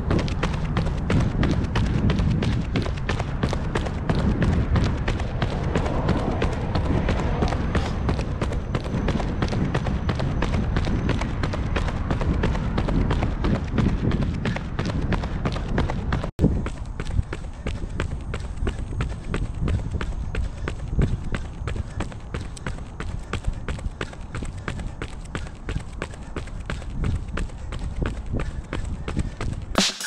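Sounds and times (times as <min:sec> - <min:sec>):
low rumble: 0:00.0 - 0:16.7
running footsteps on concrete: 0:00.0 - 0:30.0.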